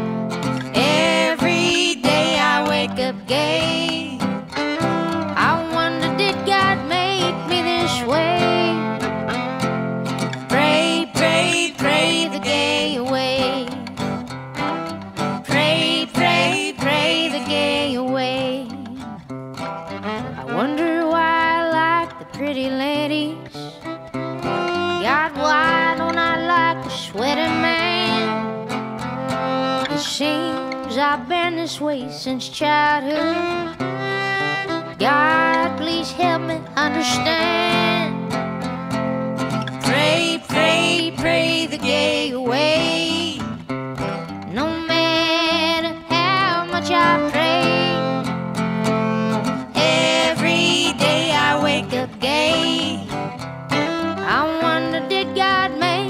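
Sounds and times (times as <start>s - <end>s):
fiddle melody: 0.0s - 56.0s
strummed acoustic guitar: 0.0s - 56.0s.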